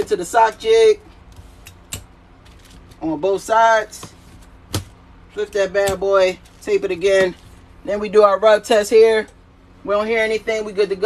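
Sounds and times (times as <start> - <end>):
light clicks and foil rustles: 2.4 - 3.1.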